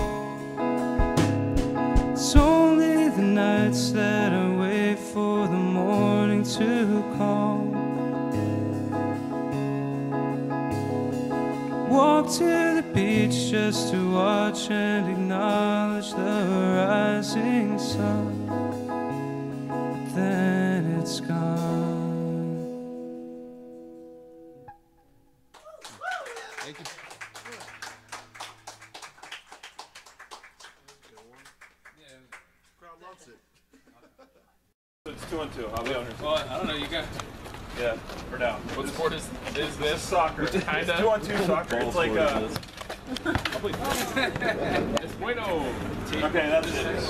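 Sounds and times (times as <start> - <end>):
guitar chord ringing: 0.0 - 25.4
people chattering: 38.4 - 47.0.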